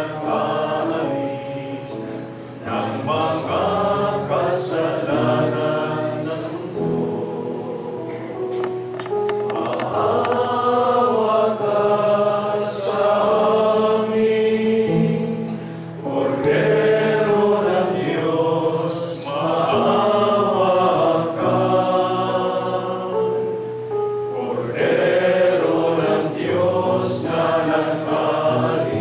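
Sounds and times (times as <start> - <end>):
men singing a chant-like hymn: 0.0 - 7.4, 9.6 - 23.4, 24.4 - 29.0.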